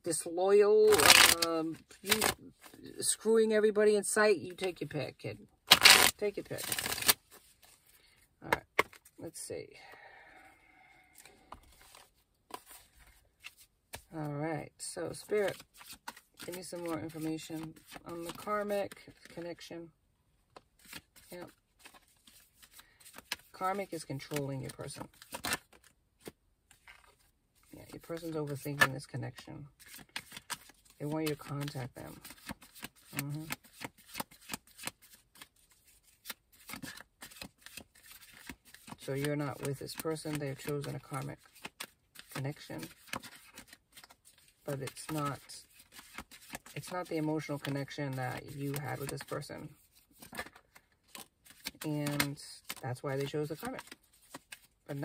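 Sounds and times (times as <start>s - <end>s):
cards tapping and rustling: 0.9s - 2.7s, 5.7s - 7.9s, 8.5s - 9.2s, 11.2s - 14.1s, 15.3s - 19.5s, 20.5s - 27.3s, 28.0s - 55.0s.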